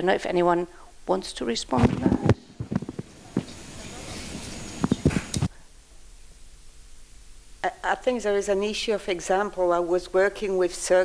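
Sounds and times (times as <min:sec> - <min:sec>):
microphone handling noise: 0:01.7 - 0:05.6.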